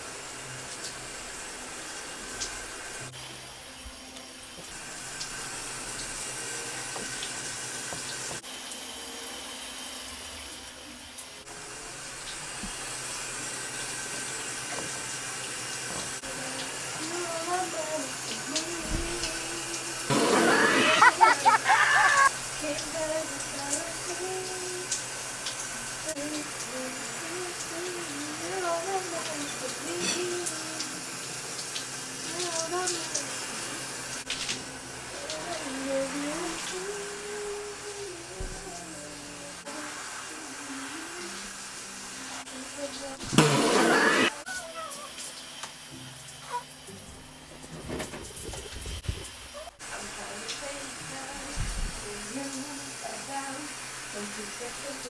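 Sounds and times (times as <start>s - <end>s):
shower running: 0.0s - 55.0s
woman singing: 16.2s - 25.0s, 26.0s - 31.2s, 32.2s - 33.9s, 35.1s - 44.6s, 49.9s - 55.0s.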